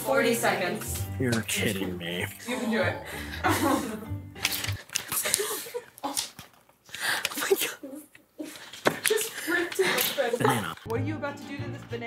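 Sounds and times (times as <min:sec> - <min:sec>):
background music: 0:00.0 - 0:05.0, 0:09.9 - 0:12.0.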